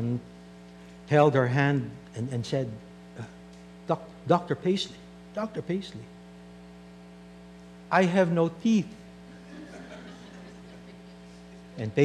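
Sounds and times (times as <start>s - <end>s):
electrical mains hum: 0.0s - 12.0s
man's voice: 7.9s - 8.9s, 11.8s - 12.0s.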